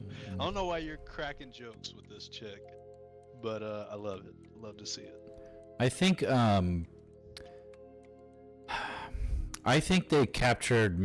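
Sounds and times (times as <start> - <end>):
faint background music: 0.0 - 11.0
man speaking: 0.3 - 2.7, 5.8 - 6.9, 9.6 - 11.0
man breathing in: 8.7 - 9.6.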